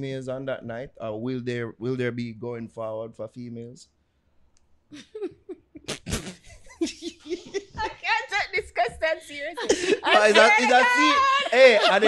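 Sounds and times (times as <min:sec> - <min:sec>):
person laughing: 0:05.0 - 0:08.0, 0:09.6 - 0:12.0.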